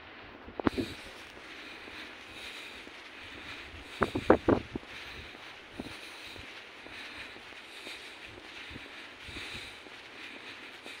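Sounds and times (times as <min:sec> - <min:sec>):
footsteps on paved path: 0:00.0 - 0:11.0
outdoor background hiss: 0:00.0 - 0:11.0.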